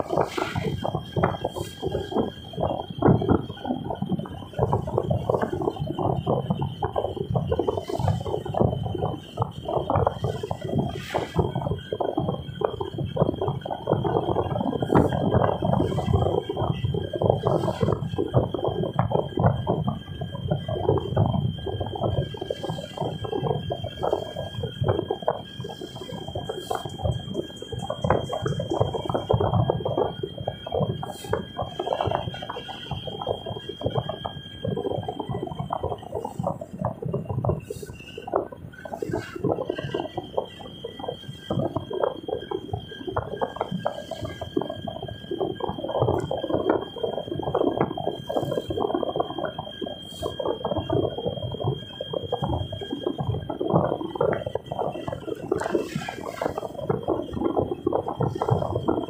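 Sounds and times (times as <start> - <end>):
rattling and clicking in moving car: 0.0 - 48.9, 51.1 - 59.0
faint high whine: 0.0 - 59.0.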